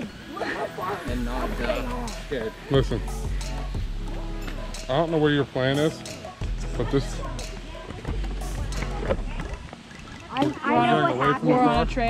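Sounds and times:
people laughing and talking: 0.0s - 12.0s.

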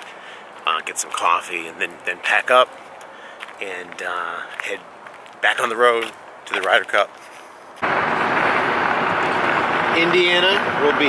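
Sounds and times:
car road and wind noise: 0.0s - 11.0s.

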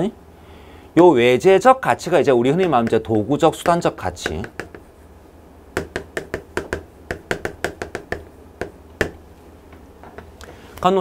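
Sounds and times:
chalk tapping on chalkboard: 2.6s - 5.1s, 5.8s - 9.2s.

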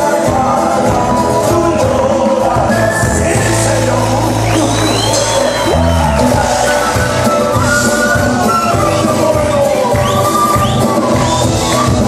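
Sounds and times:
folk band playing: 0.0s - 12.0s.

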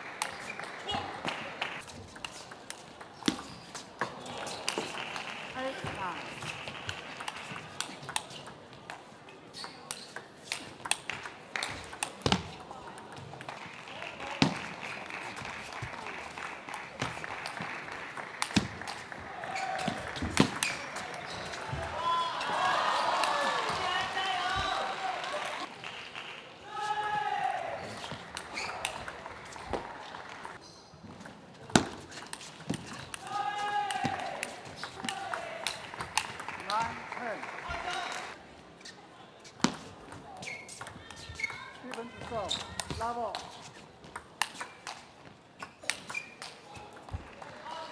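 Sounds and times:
people shouting and cheering: 19.1s - 25.7s, 26.6s - 30.6s, 33.2s - 38.4s.

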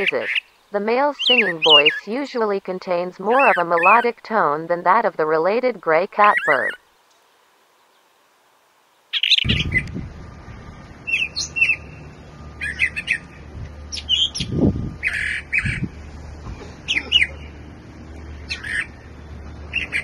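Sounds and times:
bird singing: 0.0s - 2.5s, 3.2s - 4.2s, 6.2s - 6.8s, 9.1s - 20.0s
low background rumble: 9.4s - 20.0s.

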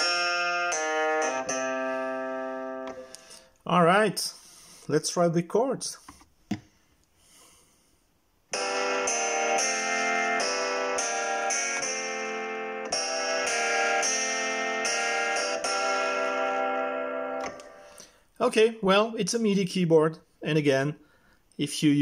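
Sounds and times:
electric keyboard chords: 0.0s - 3.5s, 8.5s - 18.2s.

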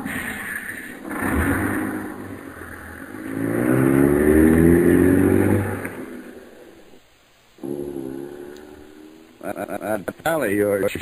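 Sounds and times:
truck engine revving and pulling away: 0.0s - 7.0s
vehicle engine starting: 0.9s - 7.0s.

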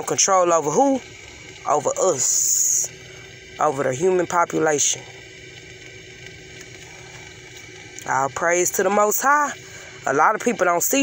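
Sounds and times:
background hum and hiss: 0.0s - 11.0s.

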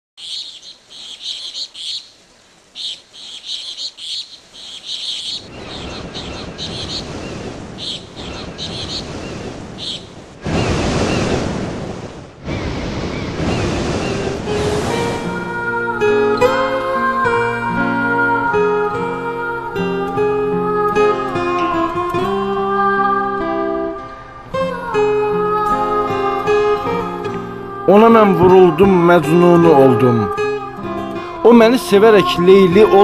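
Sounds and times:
birds chirping: 0.2s - 11.6s, 12.4s - 16.6s
surf breaking: 5.4s - 16.7s
acoustic guitar music: 13.5s - 33.0s.

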